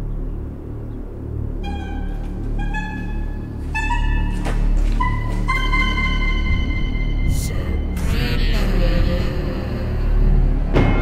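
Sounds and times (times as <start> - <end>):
low droning horror music: 0.0 - 11.0
high saxophone notes: 1.6 - 10.3.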